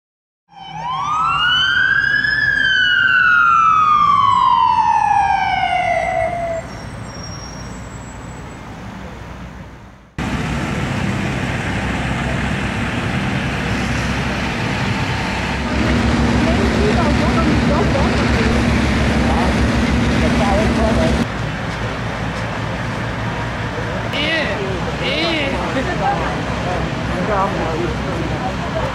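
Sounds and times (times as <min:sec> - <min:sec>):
fire engine siren: 0:00.5 - 0:07.1, 0:10.2 - 0:21.3
low engine drone: 0:10.1 - 0:28.9
engine din: 0:10.2 - 0:28.9
voices: 0:11.6 - 0:22.5, 0:23.2 - 0:28.9.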